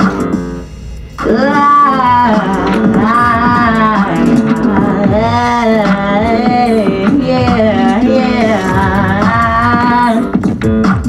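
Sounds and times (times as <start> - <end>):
voice singing gliding wordless notes: 1.0 - 10.4.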